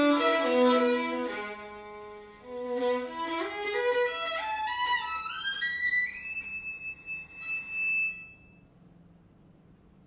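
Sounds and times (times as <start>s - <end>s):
solo violin playing: 0.0s - 8.4s.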